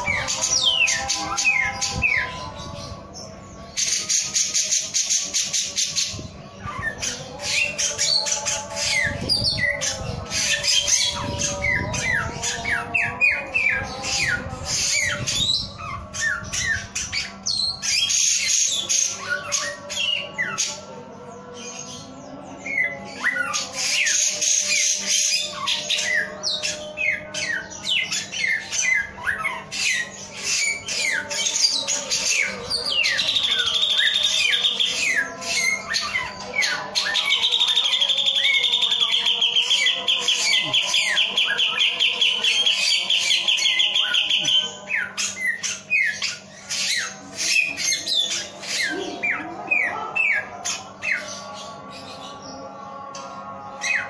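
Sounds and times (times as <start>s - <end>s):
bird singing whistled notes and trills: 0.0s - 54.0s.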